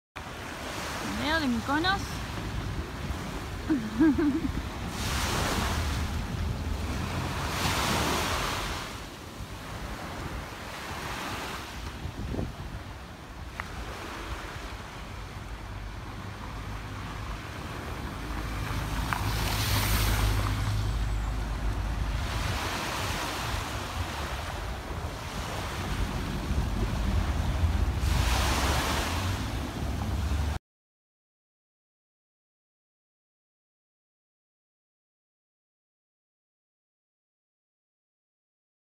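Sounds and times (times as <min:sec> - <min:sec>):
small waves washing onto beach: 0:00.2 - 0:30.6
wind rumbling on microphone: 0:00.2 - 0:30.6.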